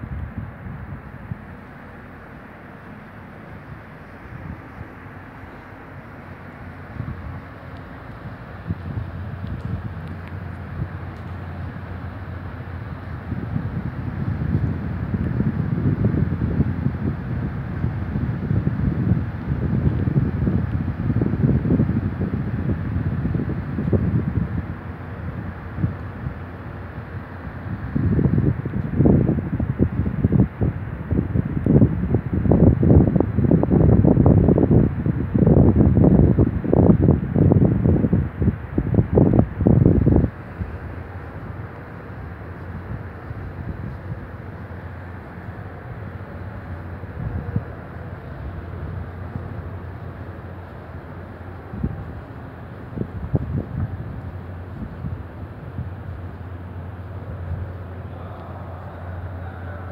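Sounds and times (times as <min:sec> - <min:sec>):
metro train rumbling: 0:00.0 - 0:59.9.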